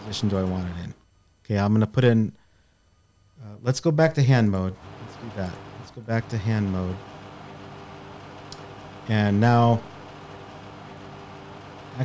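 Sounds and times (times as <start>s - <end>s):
background hum and hiss: 0.0s - 12.0s
faint steady tones: 0.0s - 12.0s.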